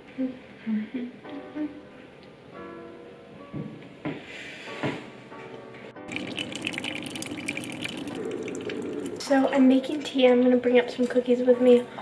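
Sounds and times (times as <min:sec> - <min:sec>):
hot water pouring into mug: 0:06.1 - 0:09.3.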